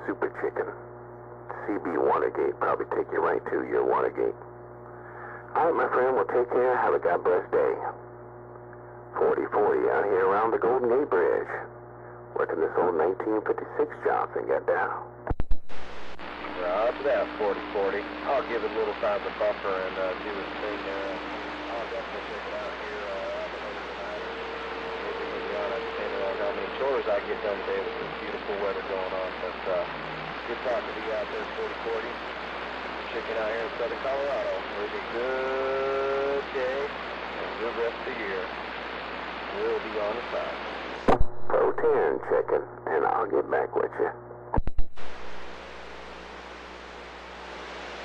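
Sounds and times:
radio static hiss: 0:00.0 - 0:08.1, 0:08.7 - 0:48.0
steady low hum: 0:00.0 - 0:48.0.

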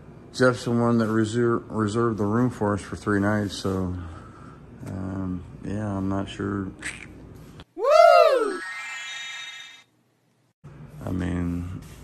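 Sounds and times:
swooping pitched tone: 0:08.2 - 0:09.9.

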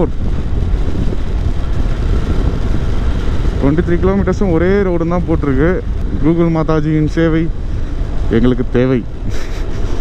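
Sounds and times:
motorcycle running: 0:00.0 - 0:10.0
road noise: 0:00.0 - 0:10.0
wind rushing over microphone: 0:00.0 - 0:10.0.

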